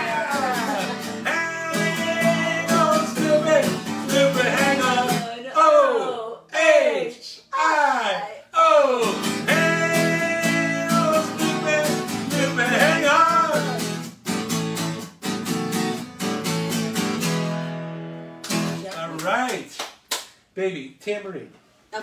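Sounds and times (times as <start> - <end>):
acoustic guitar strumming: 0.0 - 5.4, 8.8 - 19.0.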